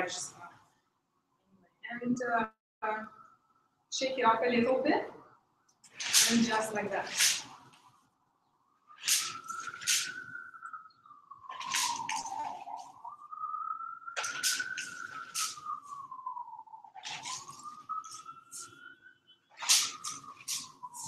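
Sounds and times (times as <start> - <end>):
paint splats on paper: 5.9 - 7.5, 9.0 - 10.3, 11.5 - 12.8, 14.2 - 15.6, 17.0 - 18.3, 19.5 - 20.8.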